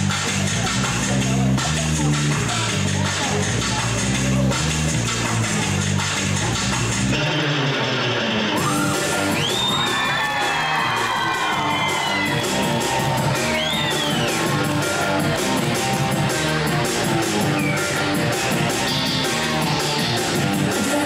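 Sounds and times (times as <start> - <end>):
heavy bass beat: 0.0 - 21.0
live pop band playing: 0.0 - 21.0
audience screaming and whooping: 8.6 - 21.0.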